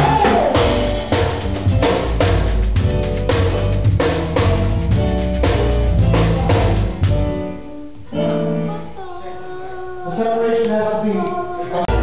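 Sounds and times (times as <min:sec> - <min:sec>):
latin band playing: 0:00.0 - 0:09.2, 0:11.8 - 0:12.0
drums: 0:00.0 - 0:10.1, 0:11.7 - 0:12.0
woman singing: 0:08.4 - 0:10.2.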